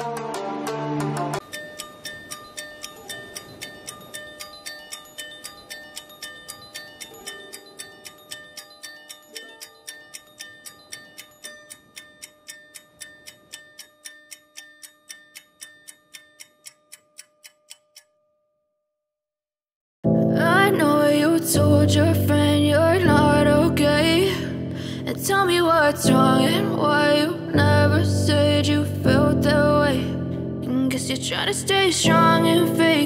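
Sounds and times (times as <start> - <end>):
ticking clock-like music: 0.0 - 18.4, 20.5 - 33.0.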